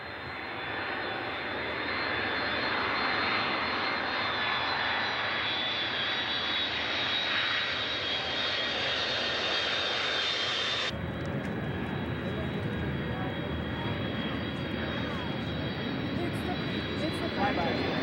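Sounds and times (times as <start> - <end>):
jet engines roaring: 0.0 - 18.0.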